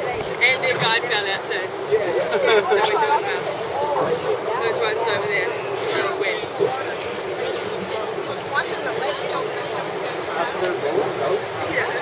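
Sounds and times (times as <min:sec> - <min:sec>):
people talking indistinctly: 0:00.0 - 0:12.0
steady background noise: 0:00.0 - 0:12.0.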